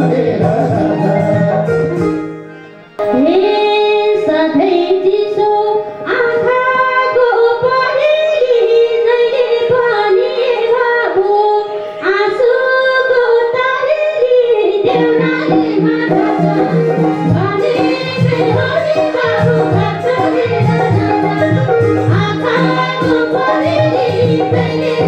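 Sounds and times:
instrumental accompaniment: 0.0 - 25.0
woman singing into microphone: 3.0 - 25.0.

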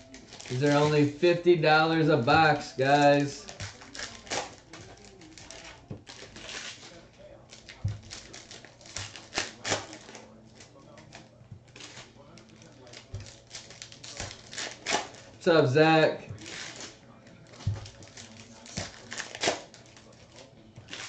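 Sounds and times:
foil wrappers rustling: 0.0 - 21.0.

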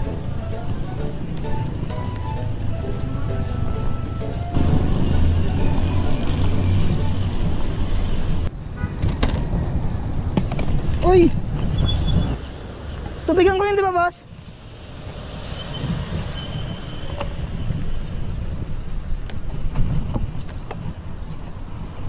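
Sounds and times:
bike tyres rolling: 0.0 - 12.4, 15.8 - 22.0
wind on microphone: 4.5 - 12.4, 15.6 - 22.0.

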